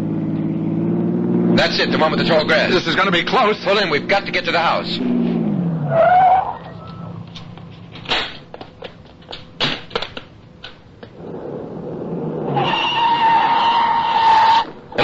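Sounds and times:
tire squealing: 0.0 - 7.8, 11.1 - 15.0
car approaching: 0.0 - 9.6, 10.4 - 15.0
sharp knocks and bangs: 7.9 - 10.8.

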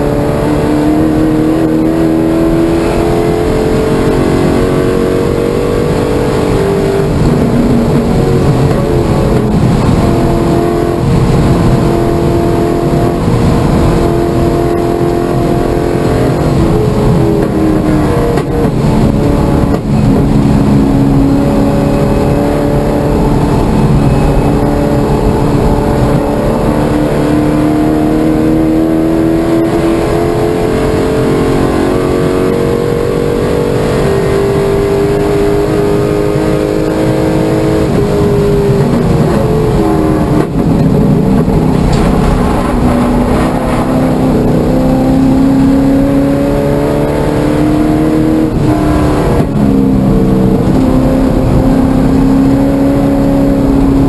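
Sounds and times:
car engine revving under load: 0.0 - 54.0
road and wind roar: 0.0 - 54.0.

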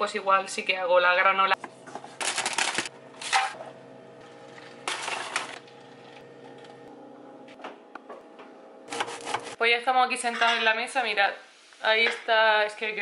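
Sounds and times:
chips rattling into metal pan: 2.2 - 3.4.

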